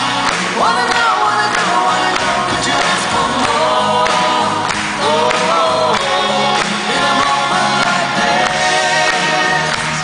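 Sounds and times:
live band playing: 0:00.0 - 0:10.0
man and woman singing duet: 0:00.0 - 0:10.0.

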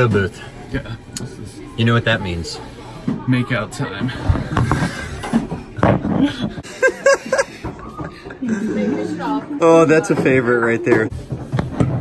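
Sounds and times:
men laughing: 0:04.5 - 0:09.3.

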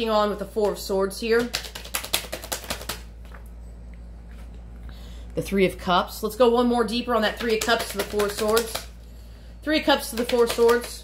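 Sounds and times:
low steady hum: 0:00.0 - 0:11.0
cards shuffling clicks: 0:01.4 - 0:03.4, 0:07.3 - 0:08.9.

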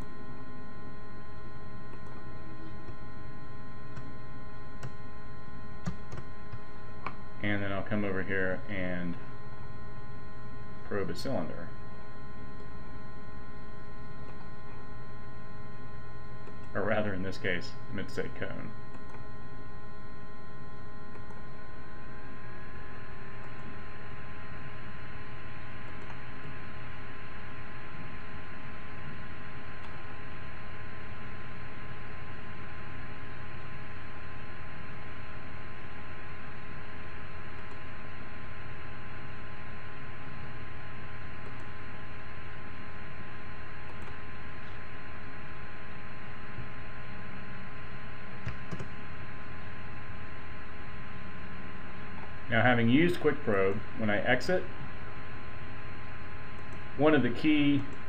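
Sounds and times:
steady hum and hiss: 0:00.0 - 0:58.0.

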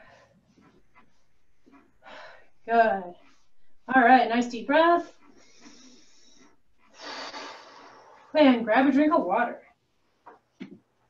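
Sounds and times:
woman inhaling deeply: 0:06.9 - 0:08.3.

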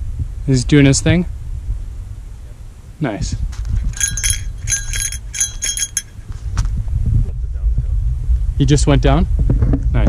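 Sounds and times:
wind rumble on microphone: 0:00.0 - 0:10.0
small metal bell jingling: 0:03.8 - 0:06.2.

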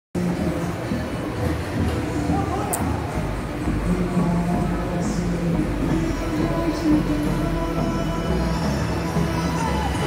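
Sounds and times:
faint music: 0:00.2 - 0:10.0
low rumbling indoor ambience: 0:00.2 - 0:10.0.

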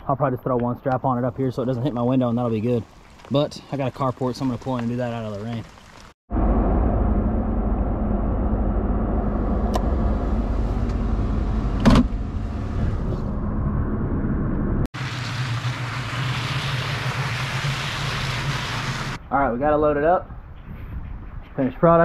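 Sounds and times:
pickup engine running: 0:06.3 - 0:19.2.

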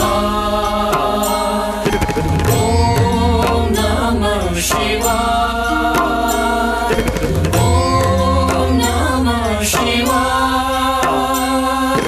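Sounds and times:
devotional chant-like singing: 0:00.0 - 0:12.0
low drone: 0:00.0 - 0:12.0.

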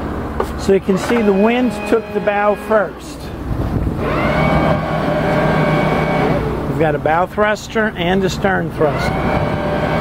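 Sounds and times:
electric thruster whining: 0:00.7 - 0:07.3, 0:08.7 - 0:10.0.

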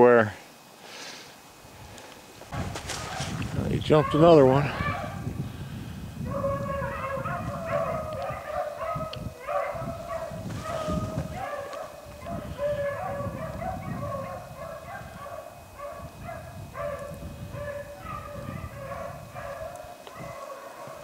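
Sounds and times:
pack of dogs baying: 0:02.6 - 0:05.2, 0:06.2 - 0:21.0.

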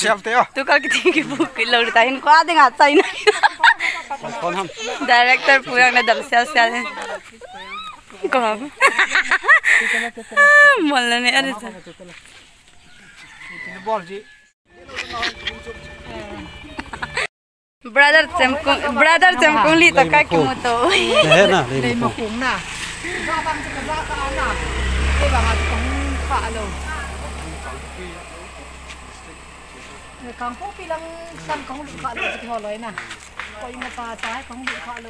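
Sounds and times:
people's voices: 0:00.0 - 0:12.3, 0:17.9 - 0:35.0
faint rooster crowing: 0:12.8 - 0:14.5
vehicle engine rumble: 0:18.0 - 0:35.0.

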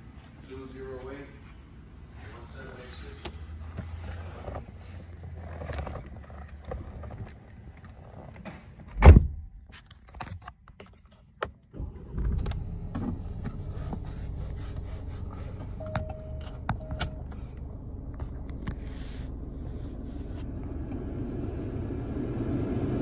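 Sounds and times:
car engine starting and idling: 0:01.8 - 0:09.6, 0:11.6 - 0:23.0
loud thump: 0:09.0 - 0:09.5
short steady beep: 0:15.8 - 0:17.2.

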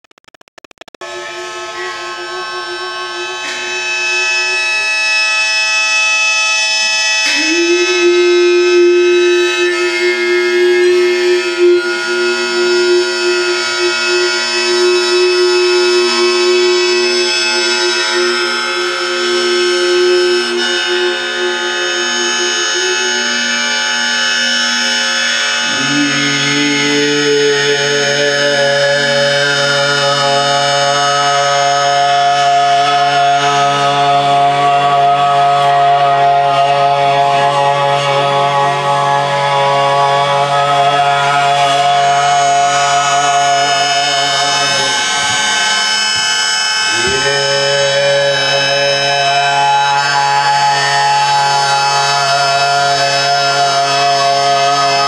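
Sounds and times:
bowed cymbal ringing: 0:01.0 - 0:55.0
held wind instrument tone: 0:01.0 - 0:55.0
low drone: 0:01.0 - 0:55.0.

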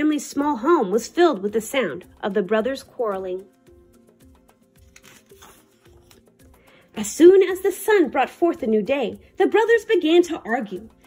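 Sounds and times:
soft background music: 0:00.0 - 0:11.0
page turning rustle: 0:04.7 - 0:06.5.

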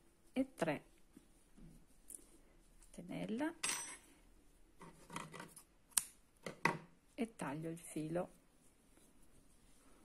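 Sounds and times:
yarn rustling: 0:07.0 - 0:10.0.

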